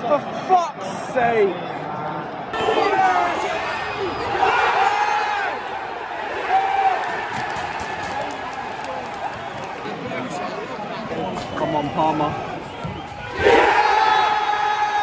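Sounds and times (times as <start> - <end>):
crowd din: 0.0 - 15.0
fans shouting nearby: 2.5 - 10.0, 11.1 - 15.0.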